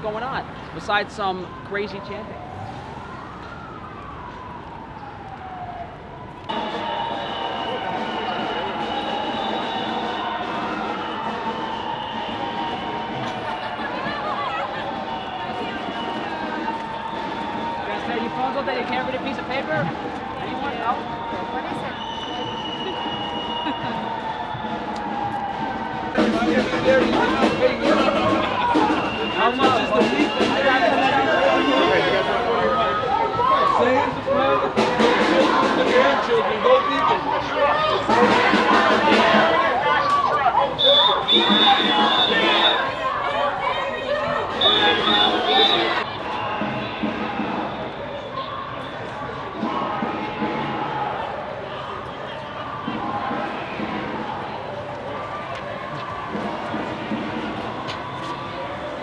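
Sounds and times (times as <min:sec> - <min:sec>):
crowd voices: 0:00.0 - 0:59.0
traffic: 0:00.0 - 0:59.0
siren wailing: 0:00.8 - 0:34.8, 0:40.6 - 0:49.5.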